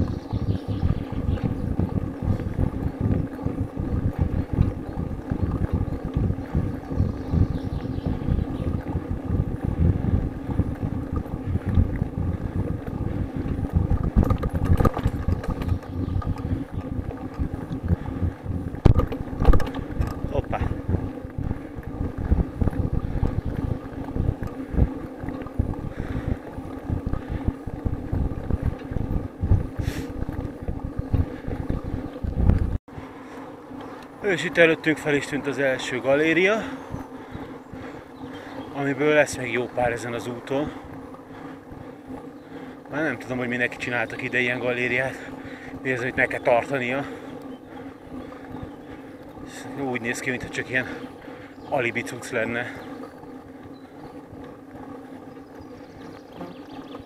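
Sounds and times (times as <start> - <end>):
faint steady hum: 0.0 - 57.0
road rumble: 0.0 - 57.0
wind buffeting microphone: 0.0 - 57.0.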